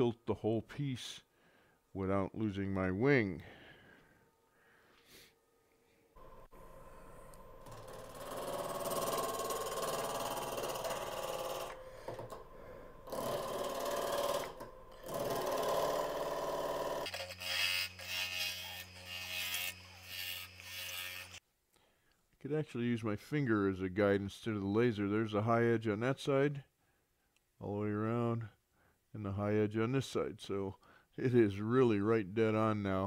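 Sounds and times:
wood lathe motor hum: 6.2s - 21.4s
bowl gouge cutting wood: 13.1s - 21.4s.

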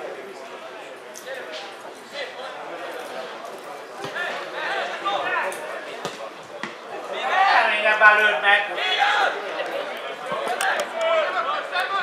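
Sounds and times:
players shouting: 6.9s - 12.0s.

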